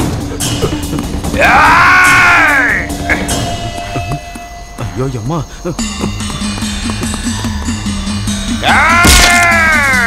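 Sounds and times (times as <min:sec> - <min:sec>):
film score music with pulsing beat: 0:00.0 - 0:10.0
loud wailing cry: 0:01.4 - 0:02.9, 0:08.6 - 0:10.0.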